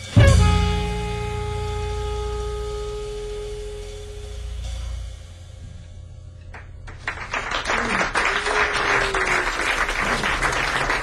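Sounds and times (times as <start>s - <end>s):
deep bass note: 0.0s - 7.0s
held jazz chord ringing: 0.0s - 7.4s.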